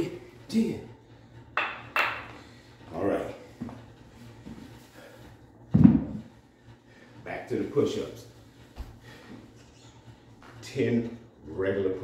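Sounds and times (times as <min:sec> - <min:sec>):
dumbbells thudding on wooden floor: 0:05.7 - 0:06.2.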